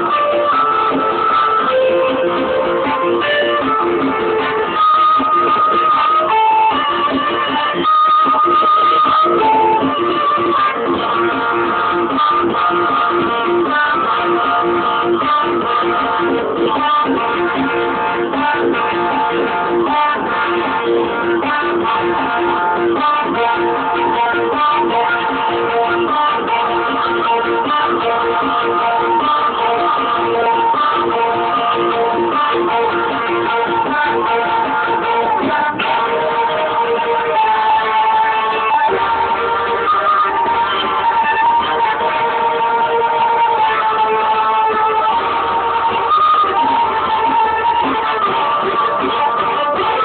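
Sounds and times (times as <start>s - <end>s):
live instrumental ensemble music: 0.0s - 50.0s.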